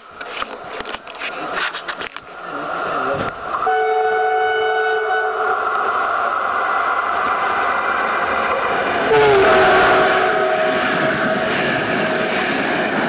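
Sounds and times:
train rolling: 0:00.0 - 0:13.0
train horn: 0:03.6 - 0:05.7, 0:09.1 - 0:12.3.

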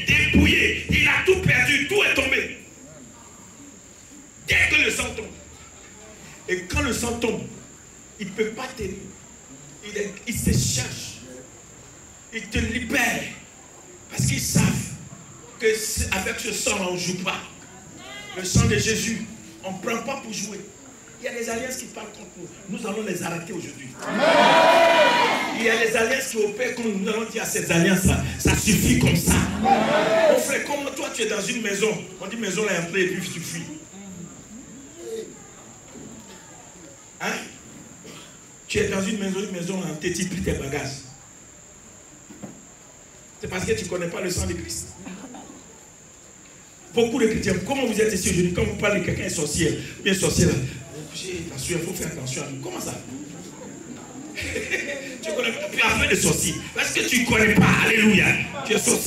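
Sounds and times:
faint voices murmuring: 0:50.5 - 0:56.8.

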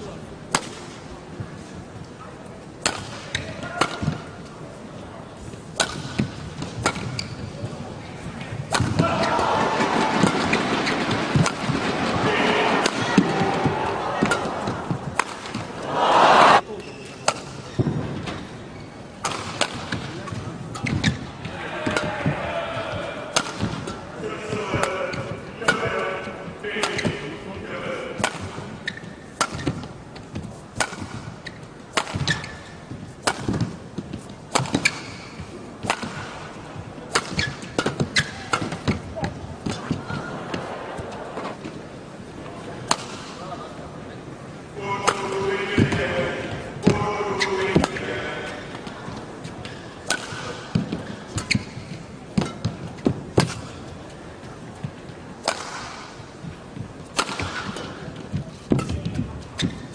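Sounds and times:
crowd noise in arena: 0:00.0 - 0:59.9
rackets striking shuttlecock: 0:05.8 - 0:07.3, 0:12.8 - 0:15.8, 0:34.5 - 0:36.4.

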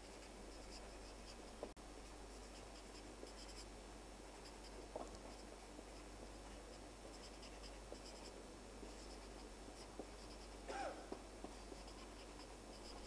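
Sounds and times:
marker pen scratching on paper: 0:00.0 - 0:03.7, 0:04.4 - 0:13.0.

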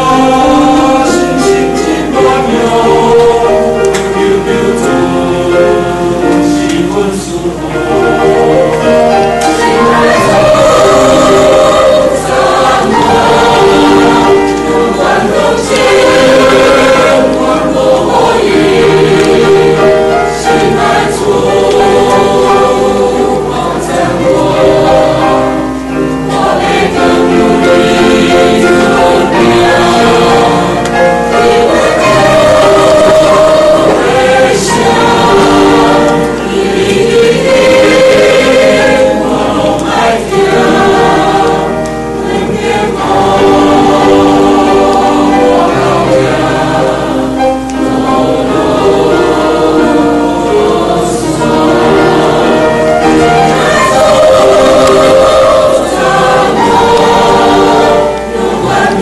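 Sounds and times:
choir singing a hymn: 0:00.0 - 0:59.0.

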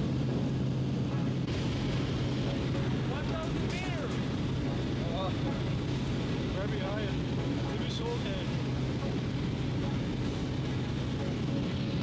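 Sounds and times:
small aircraft engine drone: 0:00.0 - 0:12.0.

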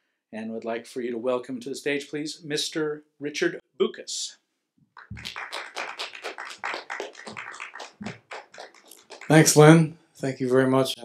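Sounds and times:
audience applauding: 0:05.0 - 0:09.8.

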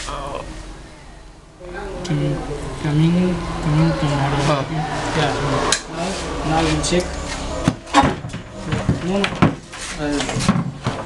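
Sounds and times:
people talking: 0:00.0 - 0:07.2, 0:08.7 - 0:10.6.

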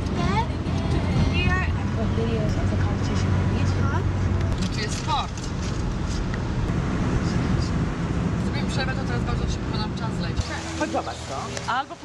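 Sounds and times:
car tyre and engine rumble: 0:00.0 - 0:12.0.

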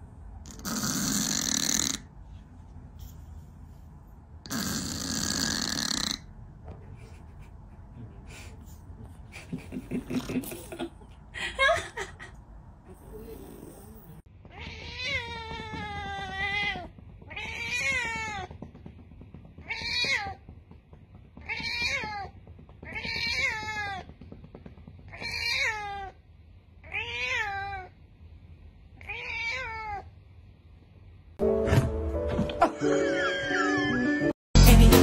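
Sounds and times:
cat meowing loudly: 0:14.5 - 0:18.5, 0:26.8 - 0:27.9.

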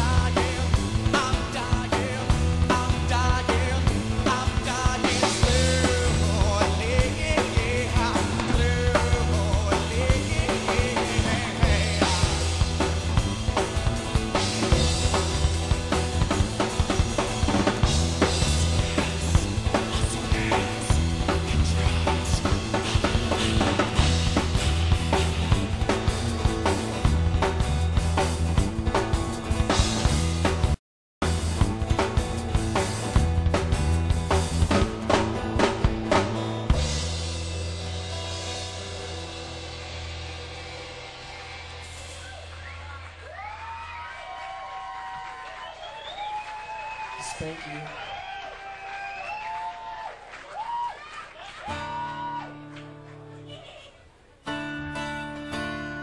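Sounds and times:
strummed acoustic guitar: 0:00.0 - 0:41.4, 0:54.4 - 0:56.0
drum kit beat: 0:00.0 - 0:44.7
bass guitar: 0:00.0 - 0:50.9, 0:51.6 - 0:56.0
live rock band: 0:00.0 - 0:56.0.

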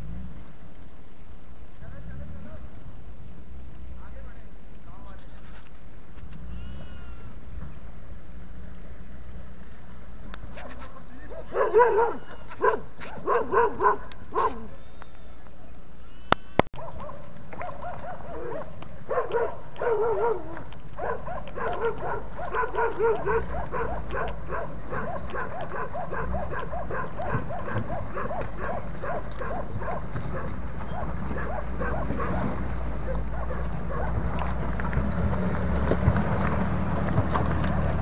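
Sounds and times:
low vehicle engine rumble: 0:00.0 - 0:38.0
dog barking: 0:10.6 - 0:14.8, 0:16.8 - 0:34.2.

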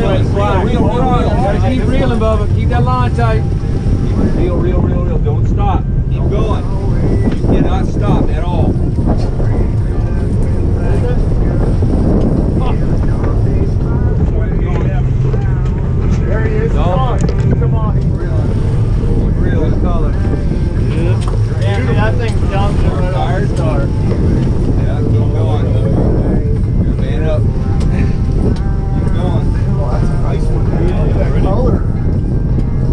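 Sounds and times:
boat engines running: 0:00.0 - 0:32.9
water rushing past hull: 0:00.0 - 0:32.9
wind buffeting microphone: 0:00.0 - 0:32.9.

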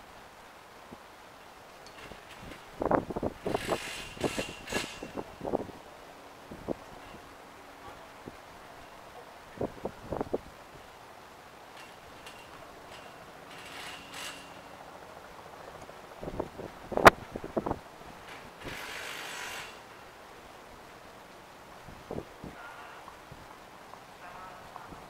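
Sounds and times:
brief hissing: 0:18.6 - 0:19.8.

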